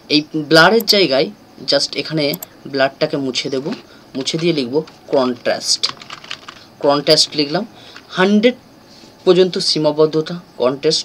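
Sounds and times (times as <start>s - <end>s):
keyboard typing: 2.3s - 2.5s, 3.7s - 8.1s.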